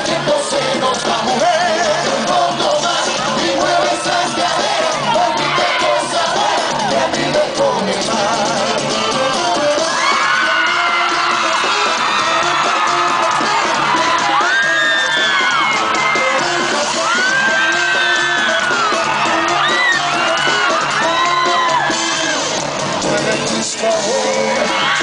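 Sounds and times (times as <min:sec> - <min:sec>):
fans screaming and whooping: 0:00.0 - 0:25.0
live pop music with beat: 0:00.0 - 0:25.0.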